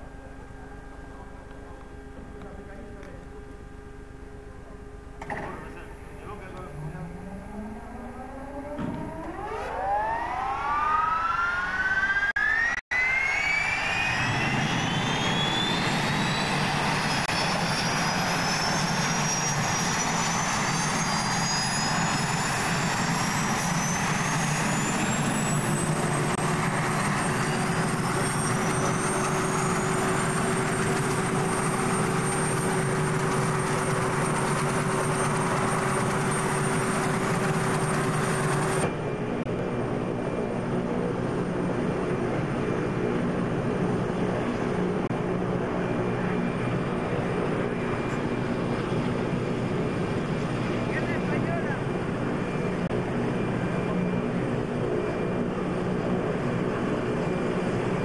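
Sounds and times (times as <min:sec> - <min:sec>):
helicopter turbine engine whine: 0:00.0 - 0:58.0.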